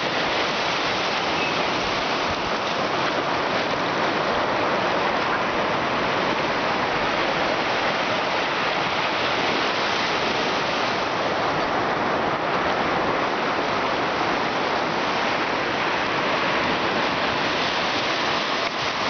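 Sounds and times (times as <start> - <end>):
ocean surf breaking on beach: 0.0 - 19.0.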